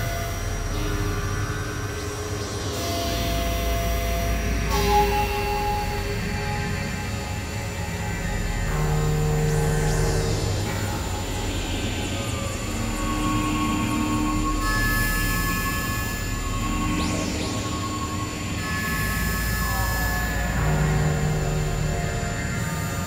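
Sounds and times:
synthesizer drone music: 0.0s - 23.0s.

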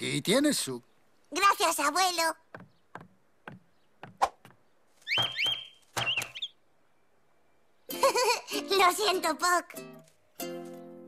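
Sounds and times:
sharp knock: 2.6s - 6.4s
cartoon bird chirping: 5.0s - 6.6s.

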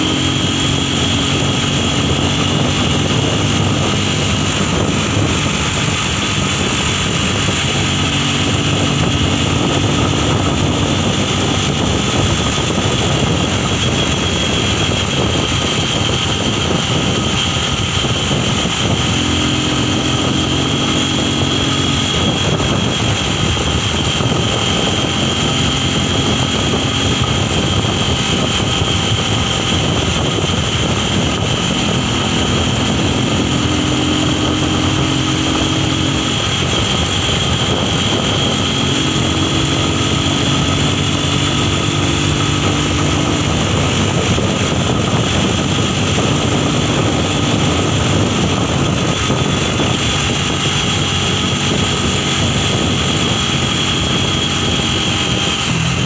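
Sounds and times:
high whine: 0.0s - 56.0s
low engine hum: 0.0s - 56.0s
vehicle engine and road noise: 0.0s - 56.0s.

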